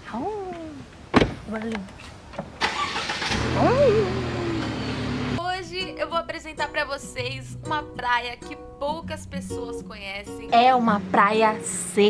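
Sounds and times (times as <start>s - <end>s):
car door slamming: 1.1s - 1.4s
car engine starting and idling: 2.5s - 5.4s.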